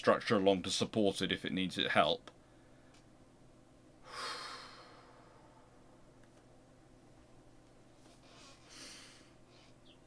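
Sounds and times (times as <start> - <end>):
man breathing out: 4.0 - 5.9.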